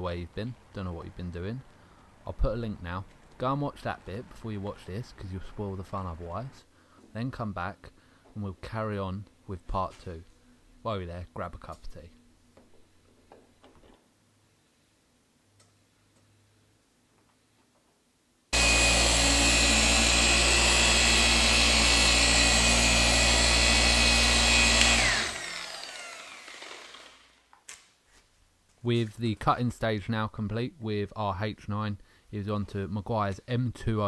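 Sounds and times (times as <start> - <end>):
electric polisher buffing: 18.6 - 27.3.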